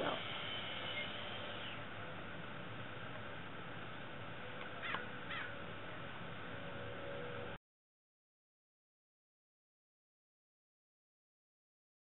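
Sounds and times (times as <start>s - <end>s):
outdoor background hiss: 0.0s - 7.6s
bird calling: 4.8s - 5.6s.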